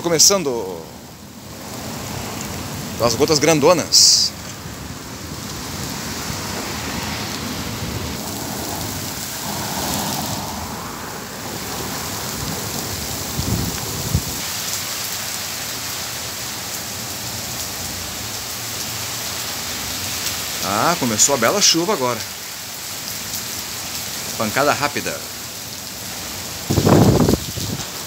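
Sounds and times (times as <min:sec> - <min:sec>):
heavy rain on pavement: 0:00.0 - 0:28.0.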